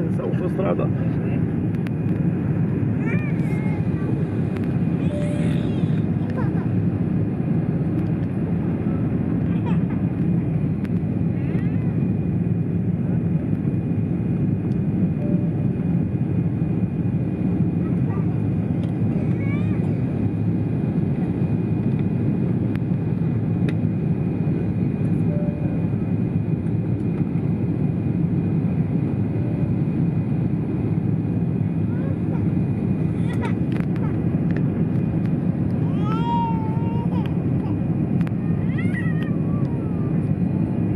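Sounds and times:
jet engine cabin rumble: 0.0 - 40.9
faint high tone: 5.0 - 5.8.

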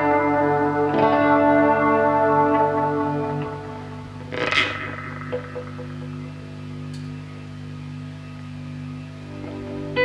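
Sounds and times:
soft plucked guitar notes: 0.0 - 7.6
electric guitar ringing notes: 0.0 - 8.3, 9.2 - 10.0.

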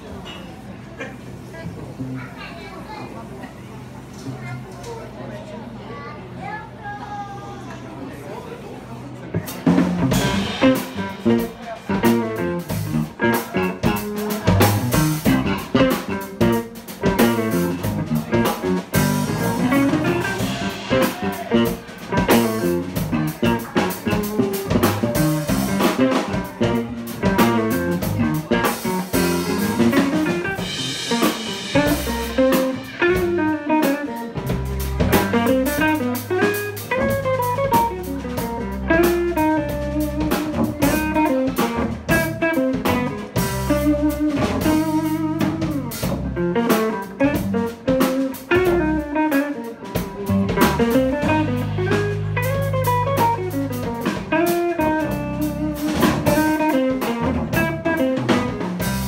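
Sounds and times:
drum kit: 9.3 - 59.0
electric bass: 9.3 - 59.0
electric guitar: 9.4 - 59.0.

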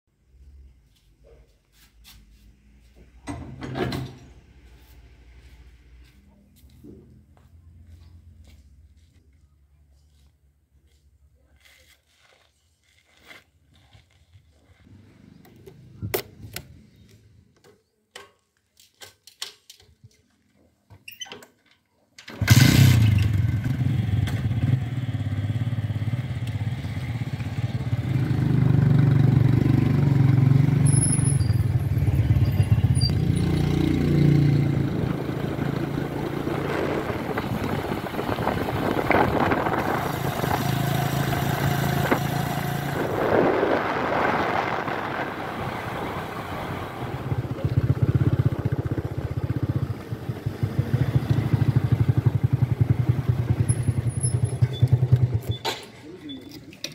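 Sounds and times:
motorcycle engine revving: 22.3 - 55.7
wind noise: 34.6 - 49.0.

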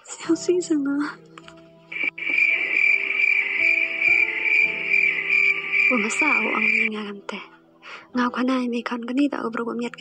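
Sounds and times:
soft background music: 0.0 - 10.0
crickets chirping: 1.9 - 6.9.

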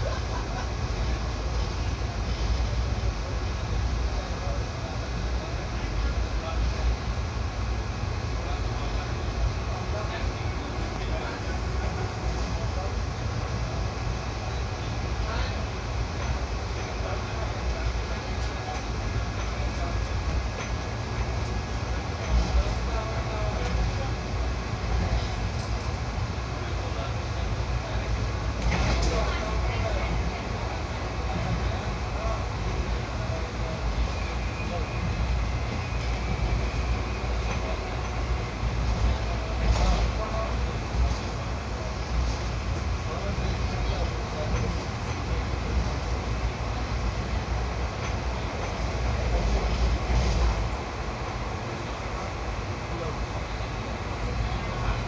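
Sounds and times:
train wheels rumbling on rail: 0.0 - 55.0
sharp train clatters: 14.5 - 26.1, 27.9 - 53.7.

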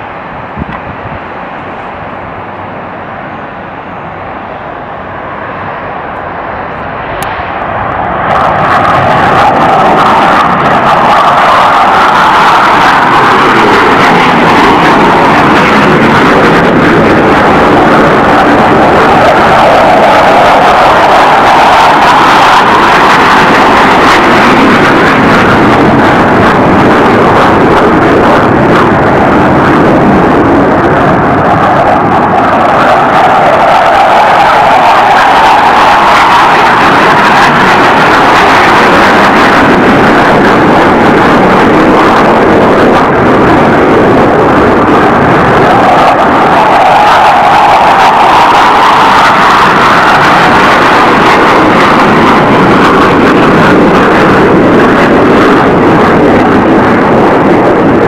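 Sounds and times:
jet engines at takeoff: 0.0 - 58.0.

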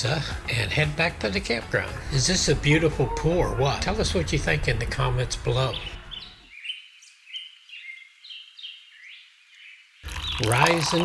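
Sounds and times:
bird chirping: 2.5 - 10.8.

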